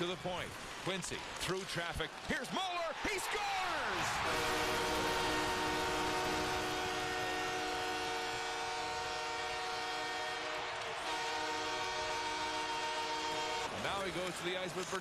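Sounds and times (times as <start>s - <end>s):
crowd cheering: 0.0s - 15.0s
goal horn blast: 4.0s - 13.9s.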